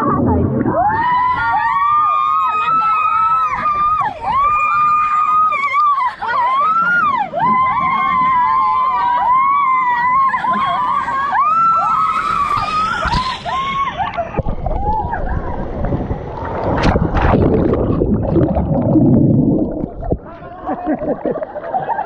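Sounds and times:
people screaming: 0.1s - 15.9s
water rushing: 11.8s - 21.7s.

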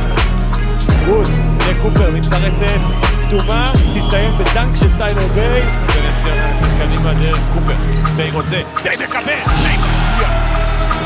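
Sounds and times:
music with steady bass line: 0.0s - 8.6s.

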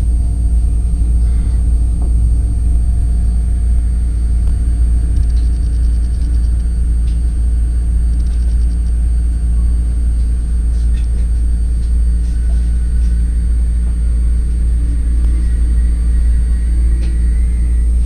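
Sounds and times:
train rumbling on rails: 0.0s - 18.0s
rapid high ticks: 5.1s - 7.2s, 8.1s - 9.0s.

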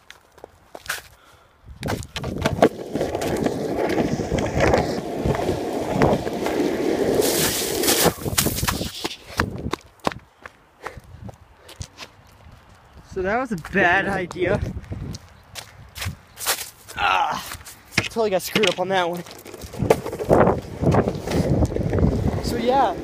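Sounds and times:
longboard wheels rolling on asphalt: 1.8s - 10.0s, 17.9s - 23.0s
hiss of board in slush: 7.2s - 9.0s
board clicks and knocks: 18.0s - 20.4s.

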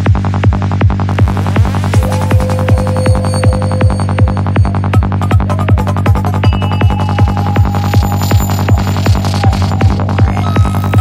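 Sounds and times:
fast kick drum: 0.0s - 11.0s
psytrance music: 0.0s - 11.0s
rolling bassline: 0.0s - 11.0s
rising synth sweep: 1.4s - 11.0s
held synth note: 2.0s - 11.0s.

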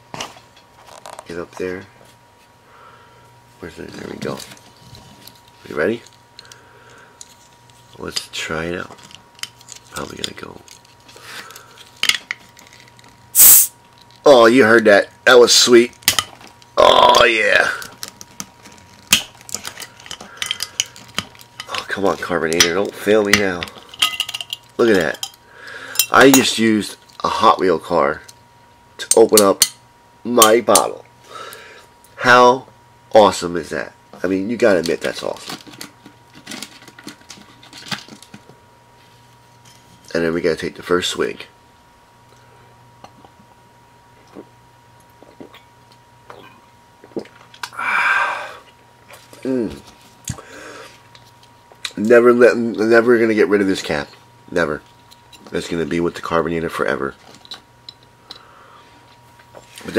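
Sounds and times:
soda bottle hiss: 13.3s - 13.8s.

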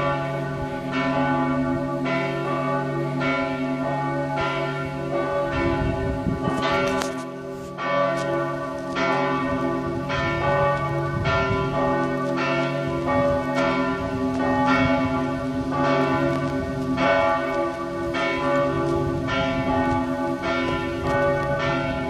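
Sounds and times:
church bells ringing: 0.0s - 22.0s.

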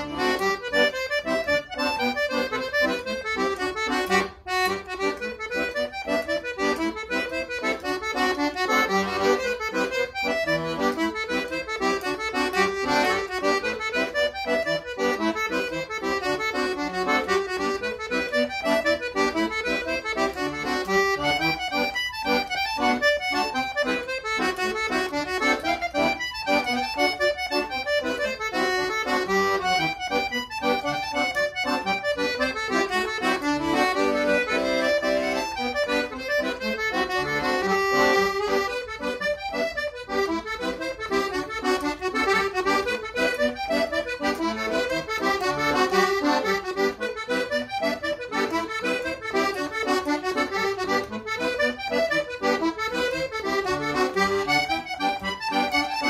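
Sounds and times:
piano accordion playing a jig: 0.0s - 56.0s.

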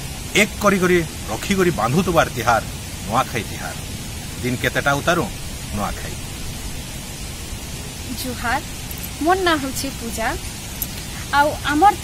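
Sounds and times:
background hiss: 0.0s - 12.0s
person's voice: 0.4s - 3.8s, 4.4s - 6.2s, 8.1s - 12.0s.

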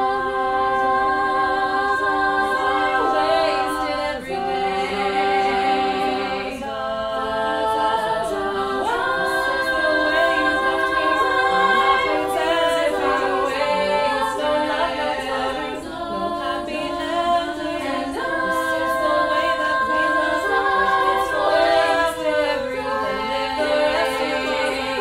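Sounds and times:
women singing a cappella chords: 0.0s - 25.0s.

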